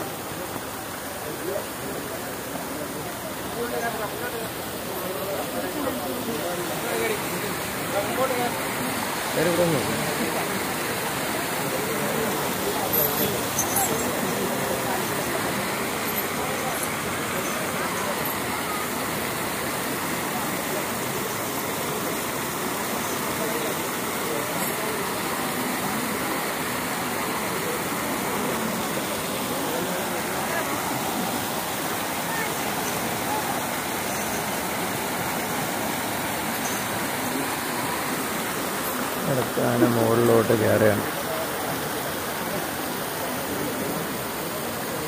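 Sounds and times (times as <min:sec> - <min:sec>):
crowd chattering: 0:00.0 - 0:45.0
water showering and splashing: 0:00.0 - 0:45.0.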